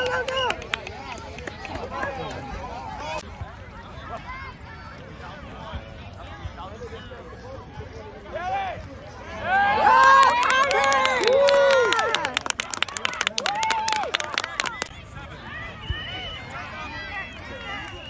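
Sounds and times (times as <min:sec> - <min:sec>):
murmur of crowd chatter: 0:00.0 - 0:18.0
spectators shouting and cheering: 0:08.3 - 0:18.0
rapid clapping: 0:10.0 - 0:14.9.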